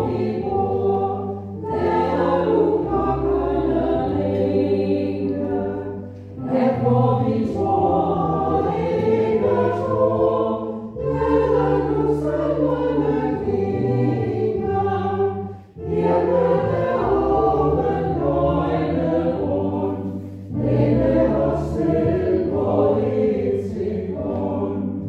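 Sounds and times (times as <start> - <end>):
choir singing a hymn: 0.0 - 25.0.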